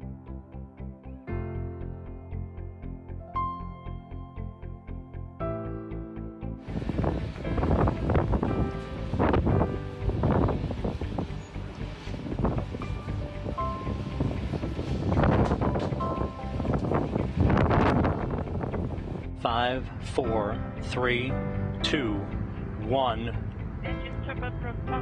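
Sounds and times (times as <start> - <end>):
background music: 0.0 - 25.0
wind buffeting microphone: 6.6 - 20.1.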